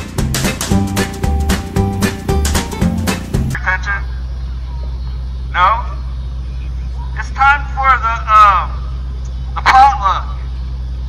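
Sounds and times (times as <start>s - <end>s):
steady low rumble: 0.0s - 11.0s
man calling through megaphone: 3.6s - 4.2s, 5.5s - 10.6s.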